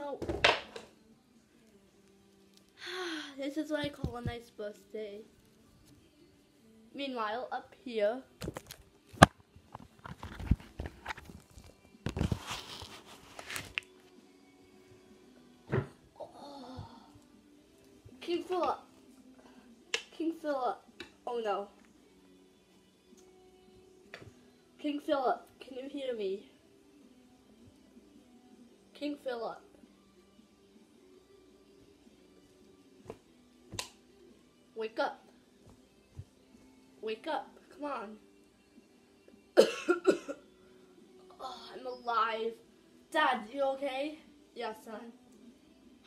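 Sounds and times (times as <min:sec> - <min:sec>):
faint background music: 0:00.0 - 0:46.0
rustling handling noise: 0:08.4 - 0:13.9
hand snaps: 0:19.9 - 0:20.1, 0:33.7 - 0:34.0.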